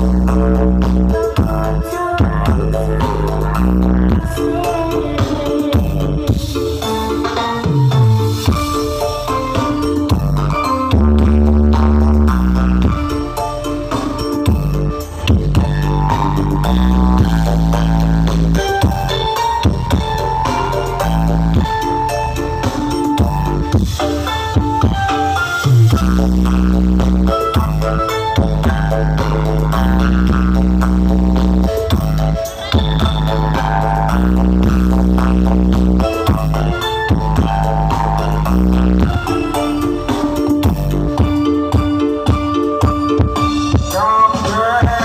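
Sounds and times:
loud dance music with deep bass: 0.0 - 4.4, 7.5 - 42.4.

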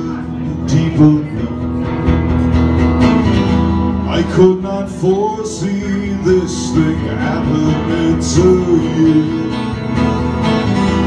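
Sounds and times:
acoustic guitar strumming: 0.0 - 11.0
person singing: 4.1 - 10.0.

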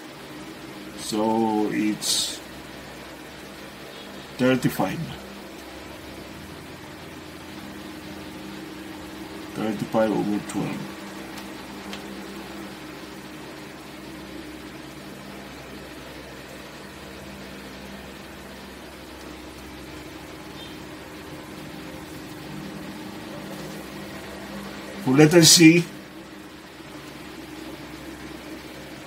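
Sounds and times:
faint background hiss: 0.0 - 29.0
steady low hum: 0.0 - 29.0.

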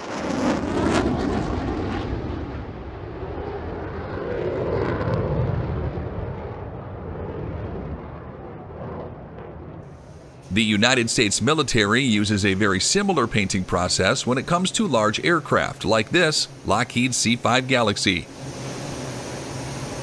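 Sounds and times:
jet engines at takeoff: 0.0 - 20.0.

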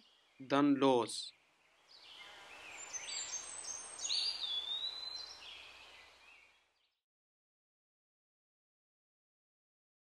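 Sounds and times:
background hiss: 0.0 - 6.7
birds chirping: 0.0 - 6.9.

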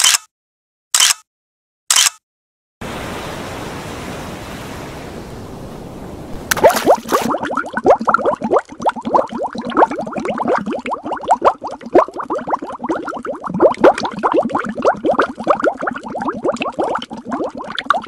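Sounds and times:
underwater bubbling: 3.2 - 18.0.

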